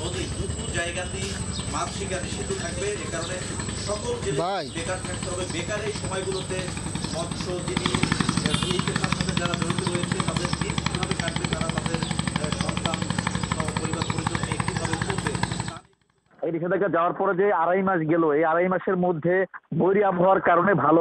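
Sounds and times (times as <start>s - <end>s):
people's voices: 0.0s - 15.8s
boat engine running: 0.0s - 16.2s.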